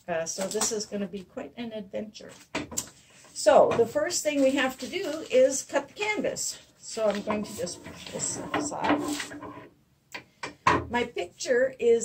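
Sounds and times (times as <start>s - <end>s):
sheet sliding across wooden table: 7.1s - 9.6s.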